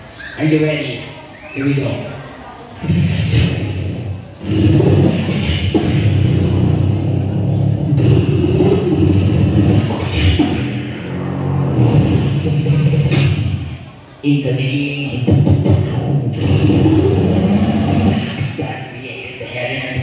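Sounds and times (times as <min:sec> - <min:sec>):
man beatboxing into a microphone: 0:02.8 - 0:20.0.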